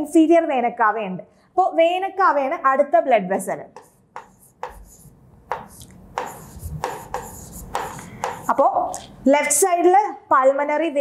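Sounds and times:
marker pen scratching on board: 0:03.8 - 0:08.7.

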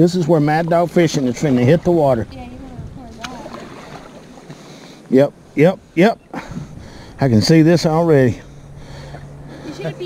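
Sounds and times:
kayak sliding into water: 0:03.2 - 0:04.7.

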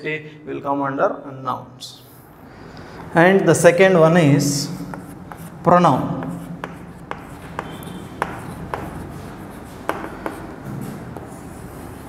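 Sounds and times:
chalk tapping on chalkboard: 0:04.8 - 0:05.6, 0:06.2 - 0:12.0.

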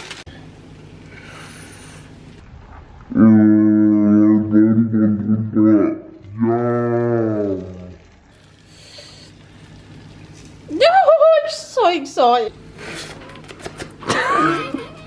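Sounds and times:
sing-song vocal exclamation: 0:03.1 - 0:07.8
man humming: 0:03.1 - 0:08.0.

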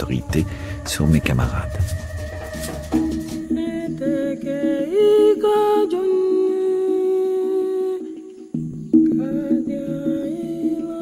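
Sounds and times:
wordless hummed melody: 0:00.0 - 0:08.4.

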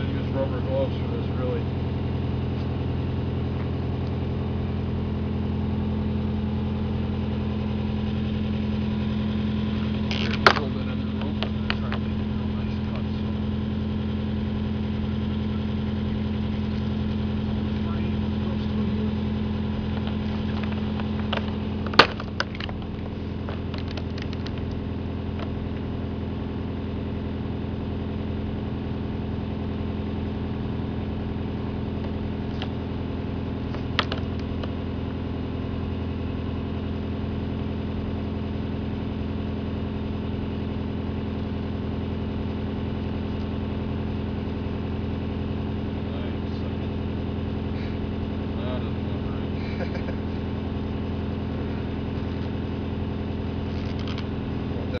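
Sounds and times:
drill rig engine idling: 0:00.0 - 0:55.0.

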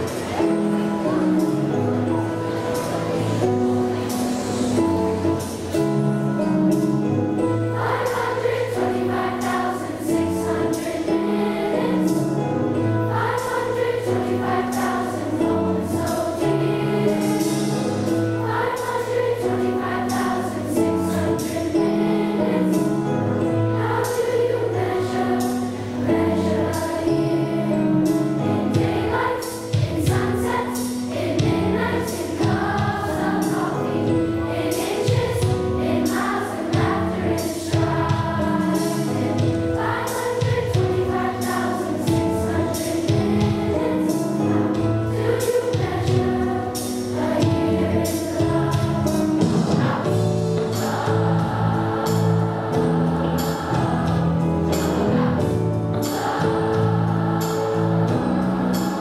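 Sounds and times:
children's choir singing: 0:00.0 - 0:59.0.

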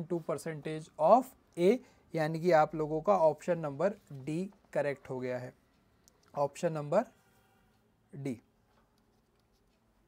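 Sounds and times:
stylus scratching on a tablet: 0:08.8 - 0:10.0.

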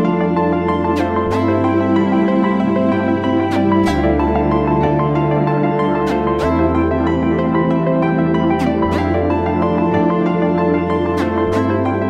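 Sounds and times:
ambient new-age music: 0:00.0 - 0:12.0.

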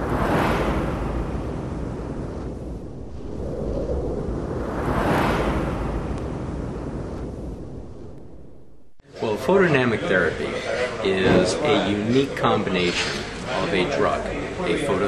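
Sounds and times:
deep low rumble: 0:00.0 - 0:09.0
long rushing whooshes: 0:00.0 - 0:09.0.

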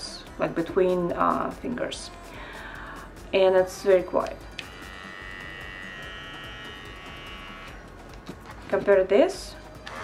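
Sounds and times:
cordless trimmer whine: 0:04.5 - 0:07.9.

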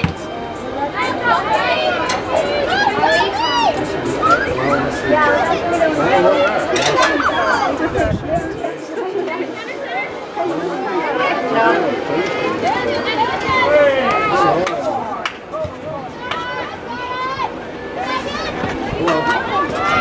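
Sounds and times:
crowd chatter: 0:00.0 - 0:20.0.

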